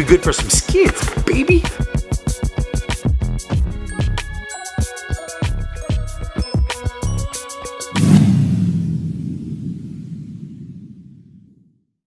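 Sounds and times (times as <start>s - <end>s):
deep rumbling boom: 8.0s - 11.8s.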